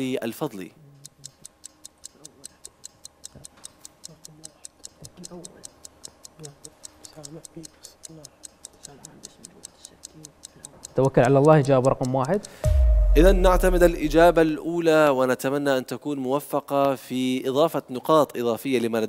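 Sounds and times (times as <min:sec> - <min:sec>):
clock ticking fast: 0:00.0 - 0:14.6.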